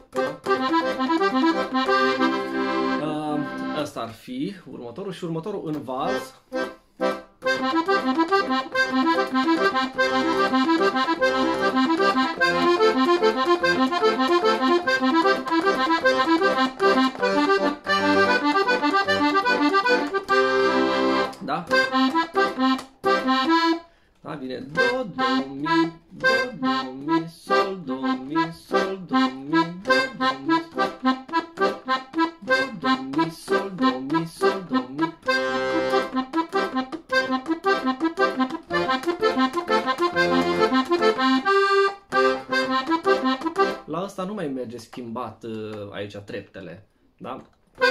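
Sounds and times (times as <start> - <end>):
piano accordion playing waltz: 0.0 - 3.9, 6.1 - 23.8, 24.8 - 43.9.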